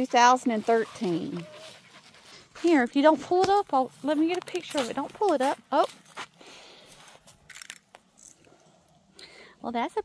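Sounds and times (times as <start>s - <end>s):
footsteps crunching on pine needles: 0.4s - 7.8s.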